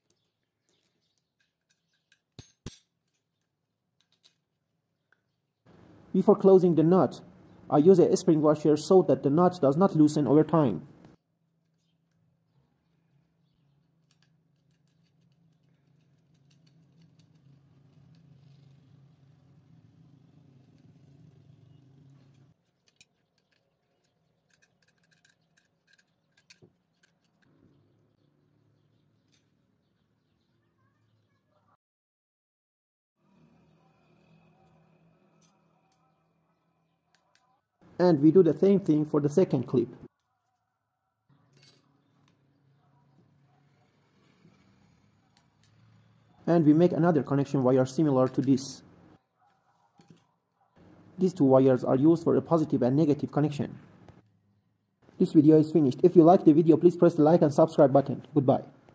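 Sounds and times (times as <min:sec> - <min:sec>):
pliers clicking and clinking on metal: 0:00.0 - 0:04.6, 0:13.8 - 0:18.8, 0:22.2 - 0:27.5, 0:41.5 - 0:42.4
faint metallic clink: 0:41.5 - 0:42.0.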